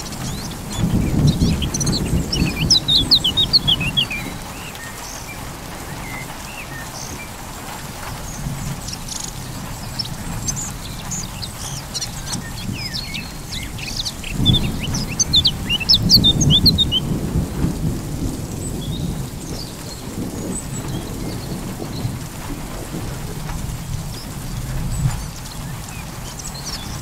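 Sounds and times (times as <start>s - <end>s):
birds chirping: 0.0s - 27.0s
steady rain: 0.0s - 27.0s
thunder rolling: 0.0s - 27.0s.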